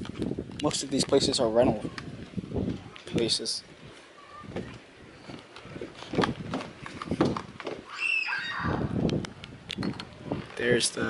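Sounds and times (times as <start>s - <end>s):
footsteps on wooden deck: 3.8s - 7.9s.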